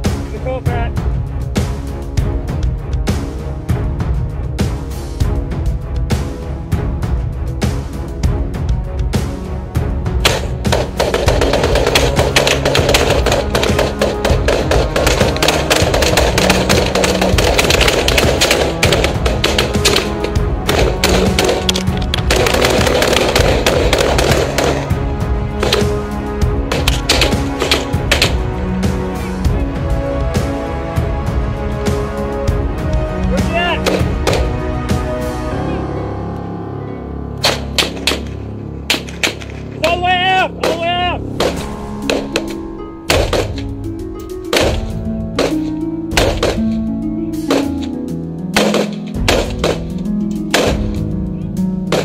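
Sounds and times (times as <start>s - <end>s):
music playing: 0.0s - 52.0s
rifle shots with echo: 10.2s - 24.9s, 26.7s - 28.4s, 48.6s - 49.9s, 50.5s - 51.0s
rapid gunfire: 10.3s - 24.9s, 25.6s - 26.0s, 26.7s - 28.4s, 43.1s - 43.6s, 46.2s - 46.6s, 48.6s - 49.9s.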